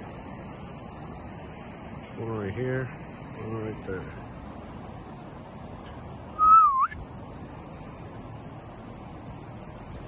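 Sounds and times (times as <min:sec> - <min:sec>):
background hiss: 0:00.0 - 0:10.0
person whistling: 0:06.4 - 0:07.0.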